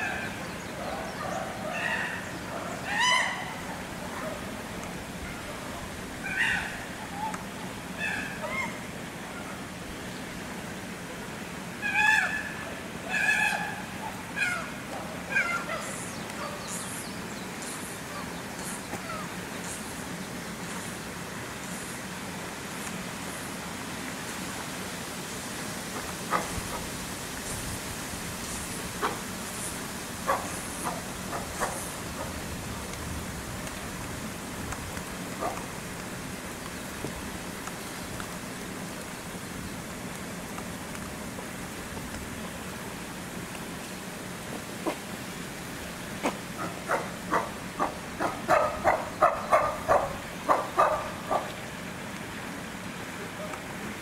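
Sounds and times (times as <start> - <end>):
chimpanzee calling: 0.0 - 4.5, 5.2 - 9.6, 11.8 - 16.8, 19.0 - 19.4, 30.2 - 32.4, 46.2 - 51.5.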